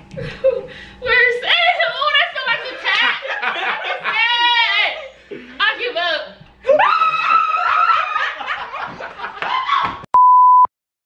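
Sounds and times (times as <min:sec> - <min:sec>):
people laughing together: 0:02.6 - 0:05.6, 0:06.6 - 0:10.0.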